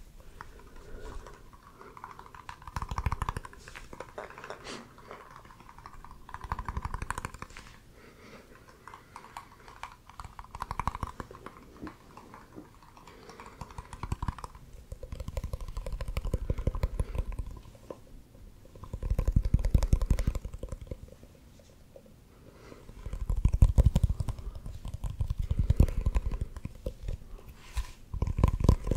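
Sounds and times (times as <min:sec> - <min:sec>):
fingers tapping small containers: 0:01.4 - 0:07.7, 0:08.6 - 0:18.0, 0:18.7 - 0:21.2, 0:22.9 - 0:27.3.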